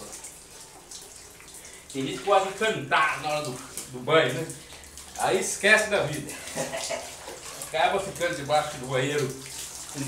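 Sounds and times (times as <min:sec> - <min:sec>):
water splashing on tiled floor: 0:00.0 - 0:10.0.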